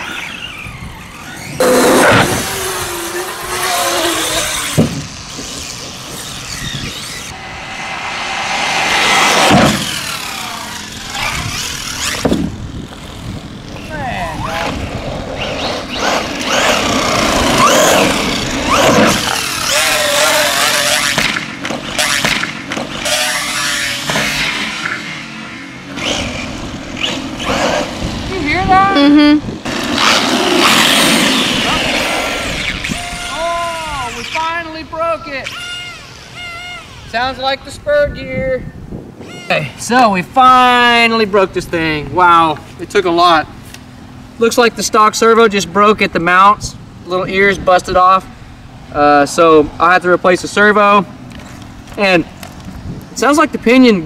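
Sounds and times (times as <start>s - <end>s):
electric motor whine: 0.0s - 34.7s, 35.5s - 37.4s
sharp knocks from landings: 4.4s - 7.3s, 9.0s - 10.3s
tyre noise on asphalt: 29.5s - 34.5s.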